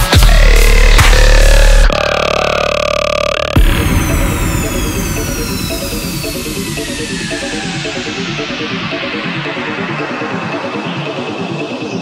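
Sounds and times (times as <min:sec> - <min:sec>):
heavy dubstep bass: 0:00.0 - 0:11.8
held buzzing synth note: 0:00.3 - 0:08.6.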